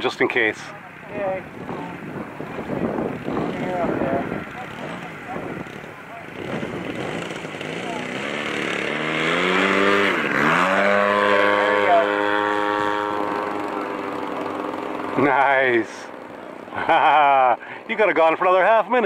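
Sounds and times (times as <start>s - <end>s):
model airplane motor and propeller: 0.0s - 19.0s.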